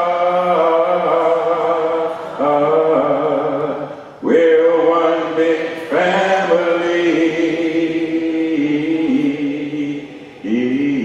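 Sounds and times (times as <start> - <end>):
man singing into microphone: 0.0 - 11.0.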